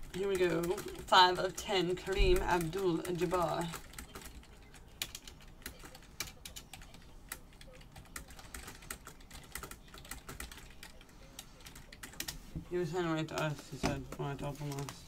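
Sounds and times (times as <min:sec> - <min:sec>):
typing on computer keyboard: 0:00.0 - 0:12.4.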